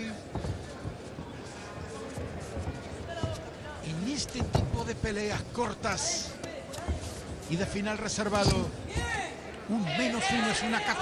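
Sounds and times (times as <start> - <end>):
crowd noise: 0.0 - 11.0
faint soft thuds: 0.2 - 5.1.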